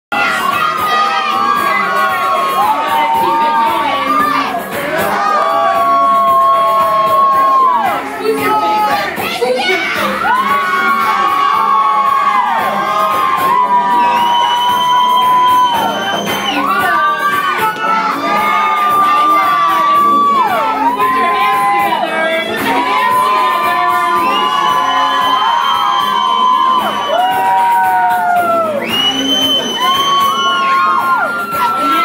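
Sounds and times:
crowd shouting and cheering: 0.0s - 32.0s
high-pitched screams: 0.2s - 32.0s.

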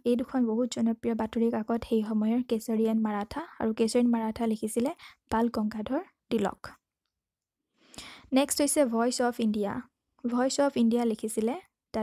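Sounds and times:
soft intake of breath: 7.8s - 8.3s.

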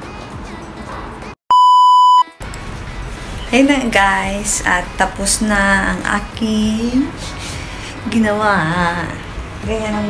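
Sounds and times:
electronic censor beep: 1.5s - 2.4s
background music: 2.4s - 10.0s.

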